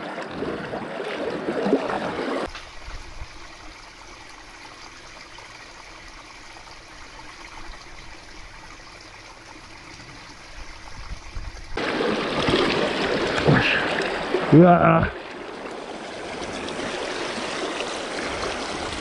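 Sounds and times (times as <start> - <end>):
shallow stream running: 0.0 - 19.0.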